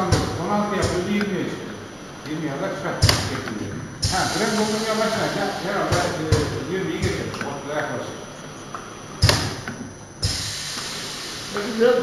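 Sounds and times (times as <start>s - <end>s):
filling machine thumps: 0.0s - 1.8s, 3.0s - 7.6s, 9.1s - 11.8s
pneumatic hiss: 0.0s - 12.0s.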